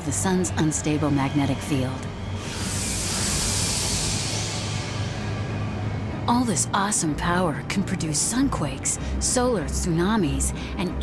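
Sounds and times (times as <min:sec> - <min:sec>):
low music drone: 0:00.0 - 0:11.0
rushing hiss-like noise effect: 0:02.2 - 0:06.2.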